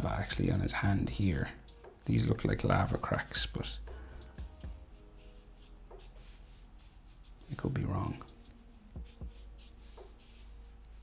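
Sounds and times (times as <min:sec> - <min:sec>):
felt-tip marker drawing on paper: 0:04.4 - 0:11.0.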